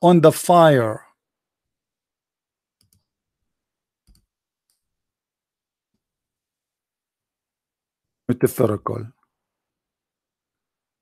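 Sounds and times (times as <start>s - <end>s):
computer mouse clicks: 2.8s - 3.1s, 4.0s - 4.9s.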